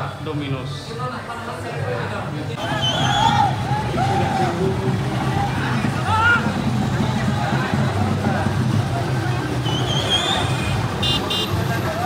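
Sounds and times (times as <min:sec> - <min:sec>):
truck engines running: 0:02.4 - 0:12.0
people shouting and calling: 0:02.6 - 0:12.0.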